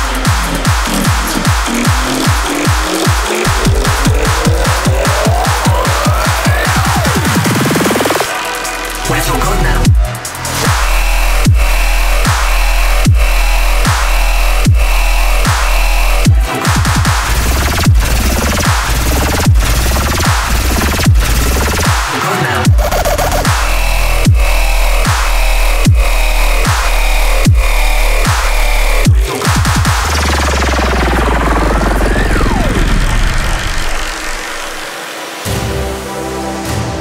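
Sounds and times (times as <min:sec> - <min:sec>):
deep kick drum: 0:00.0 - 0:07.5, 0:09.7 - 0:34.2
electronic bass line: 0:00.0 - 0:37.0
rising and diving synth sweep: 0:00.0 - 0:37.0
sustained synth chords: 0:00.0 - 0:37.0.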